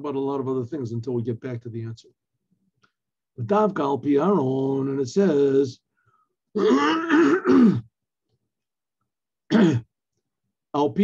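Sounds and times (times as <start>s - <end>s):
man clearing his throat: 6.6s - 7.9s, 9.5s - 9.9s.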